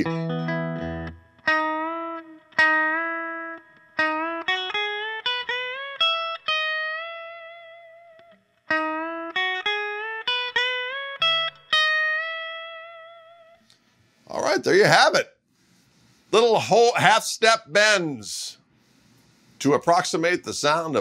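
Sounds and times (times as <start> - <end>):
electric guitar lick with string bends: 0.0 - 13.7.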